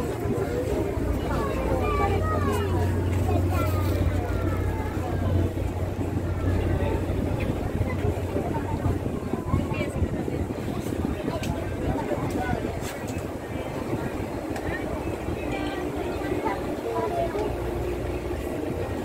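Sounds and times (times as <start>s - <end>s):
boat engine droning: 0.0s - 19.0s
indistinct voices chattering: 0.0s - 19.0s.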